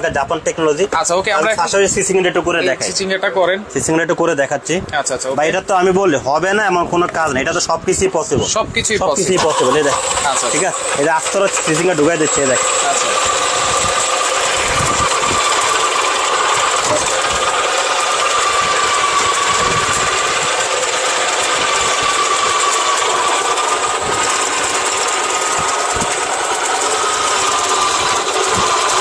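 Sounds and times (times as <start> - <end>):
salad maker motor whining: 9.1 - 29.0.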